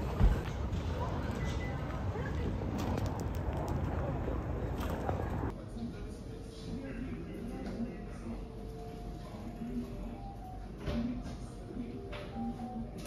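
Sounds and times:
low street rumble: 0.0 - 8.8
indistinct chatter: 0.0 - 10.7.

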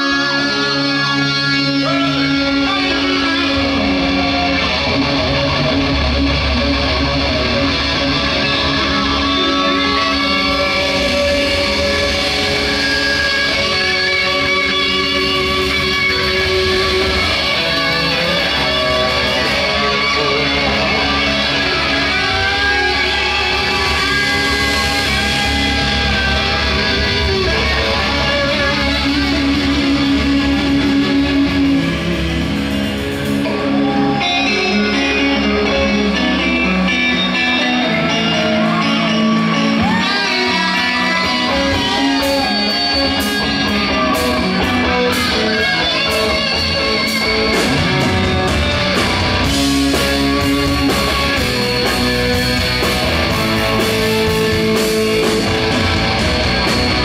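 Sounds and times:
bass guitar: 0.0 - 57.0
drum kit: 0.0 - 57.0
electric guitars: 0.0 - 57.0
rock band playing: 0.0 - 57.0.

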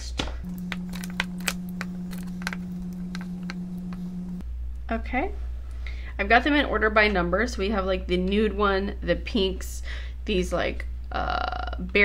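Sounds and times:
steady low hum: 0.0 - 8.3.

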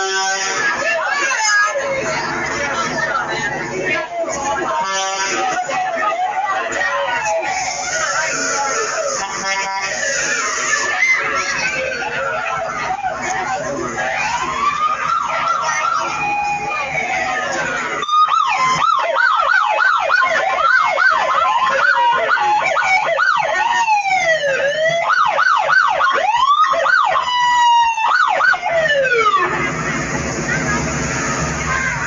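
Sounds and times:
emergency vehicle siren: 4.6 - 32.0.

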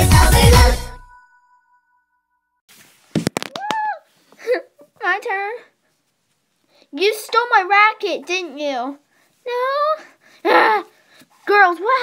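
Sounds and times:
girl's high-pitched vocal sound: 9.4 - 10.9, 11.5 - 12.0.

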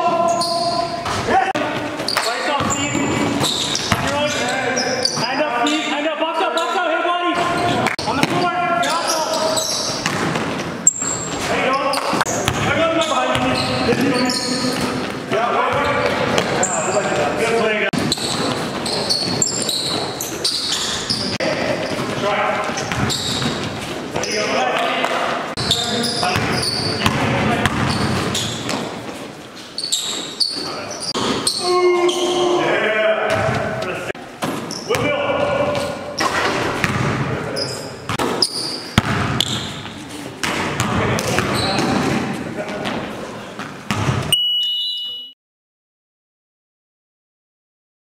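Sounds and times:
players' voices echoing: 0.0 - 44.3
basketball bouncing on wooden floor: 1.8 - 4.2, 9.8 - 11.5, 18.0 - 23.8, 25.6 - 29.0, 34.4 - 37.2, 39.0 - 42.2, 43.9 - 44.3
short high tone: 44.3 - 45.4.

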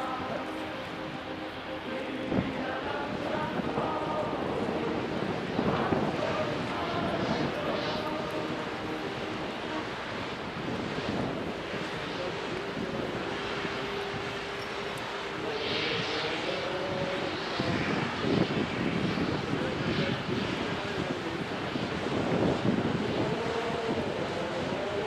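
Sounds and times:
water noise: 0.0 - 18.8
ship machinery drone: 0.0 - 25.0
wind: 0.0 - 25.0.

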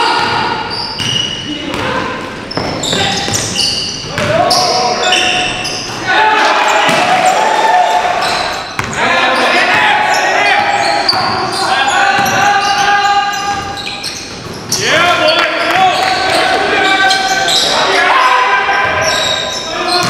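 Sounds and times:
players calling out: 0.0 - 20.0.

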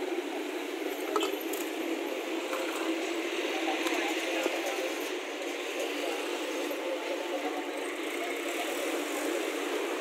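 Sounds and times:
traffic running past: 0.0 - 10.0.

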